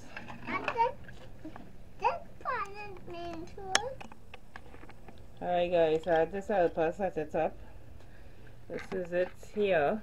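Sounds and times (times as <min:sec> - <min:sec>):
young child's voice: 0:00.5 - 0:01.0, 0:02.0 - 0:04.0.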